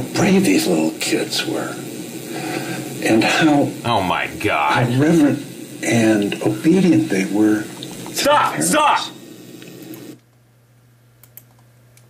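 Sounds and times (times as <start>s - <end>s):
faint computer clicks: 11.2s - 12.0s.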